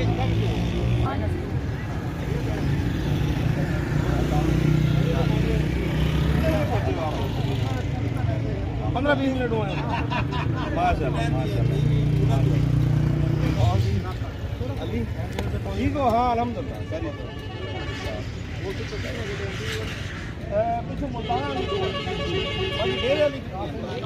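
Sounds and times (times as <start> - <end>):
men talking: 0.0 - 24.0
vehicle engines rumbling: 0.0 - 24.0.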